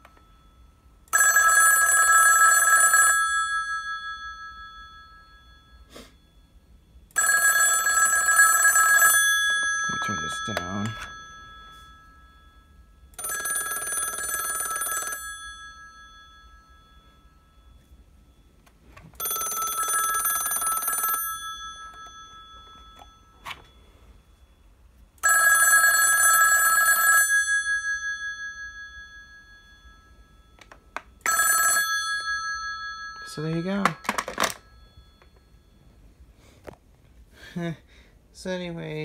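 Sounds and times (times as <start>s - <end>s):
telephone bell ringing: 0.0s - 36.6s.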